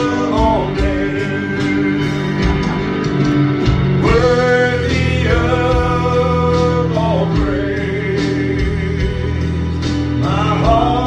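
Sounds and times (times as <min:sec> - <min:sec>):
gospel singing: 0:00.0 - 0:11.0
steady bass accompaniment: 0:00.0 - 0:11.0.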